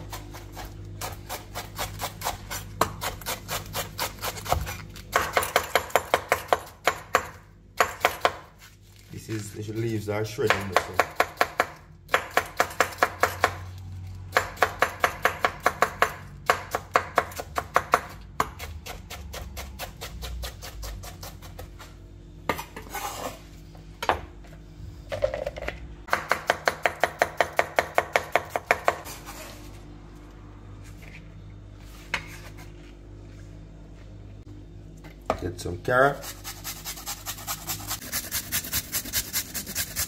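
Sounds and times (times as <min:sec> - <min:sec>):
knife chopping on cutting board: 0:10.4 - 0:13.6, 0:26.1 - 0:29.1
knife scraping board: 0:22.5 - 0:23.5, 0:29.0 - 0:29.8, 0:31.8 - 0:32.8, 0:36.2 - 0:40.0.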